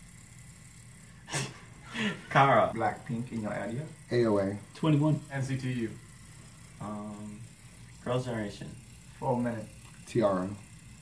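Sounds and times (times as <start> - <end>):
person snorting or laughing: 1.3 - 2.3.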